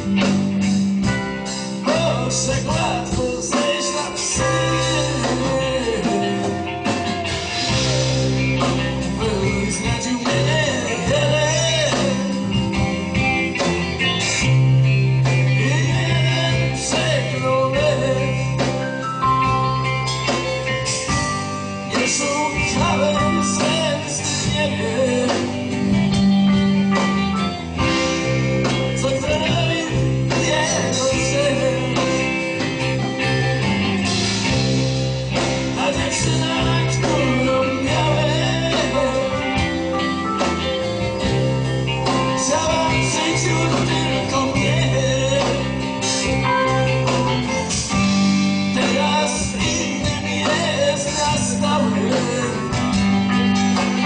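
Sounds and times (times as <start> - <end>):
bass guitar: 0.0 - 54.0
drums: 0.0 - 54.0
electric guitars: 0.0 - 54.0.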